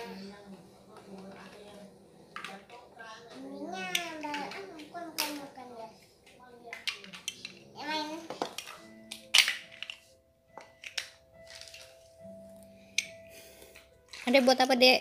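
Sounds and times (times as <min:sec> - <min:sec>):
soft background music: 0:00.0 - 0:15.0
plastic toy blocks clacking: 0:06.7 - 0:07.6, 0:08.2 - 0:12.0.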